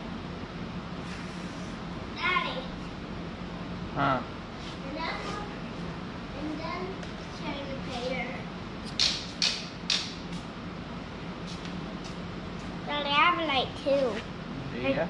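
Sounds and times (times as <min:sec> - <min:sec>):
steady low hum: 0:00.0 - 0:15.0
young child talking: 0:02.2 - 0:02.8, 0:04.8 - 0:05.6, 0:06.4 - 0:08.5, 0:12.9 - 0:14.3.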